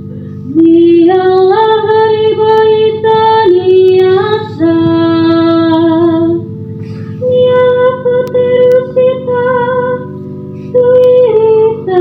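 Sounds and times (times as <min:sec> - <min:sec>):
woman singing solo: 0:00.5 - 0:06.5, 0:07.2 - 0:12.0.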